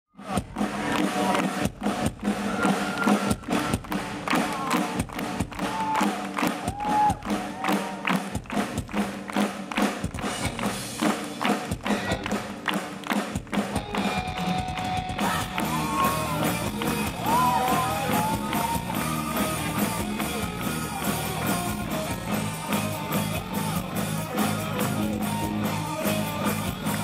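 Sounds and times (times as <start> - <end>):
live rock band playing: 0.2 - 27.0.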